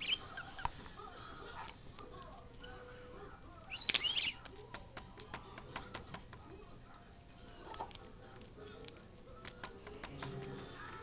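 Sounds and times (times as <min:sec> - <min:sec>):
budgie beak clicking: 0:03.6 - 0:11.0.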